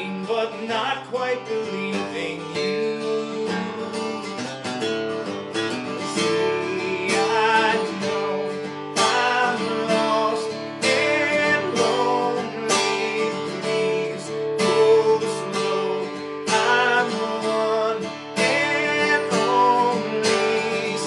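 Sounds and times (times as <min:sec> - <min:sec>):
man singing: 0:00.0 - 0:04.4, 0:05.5 - 0:21.0
acoustic guitar strumming: 0:00.0 - 0:21.0.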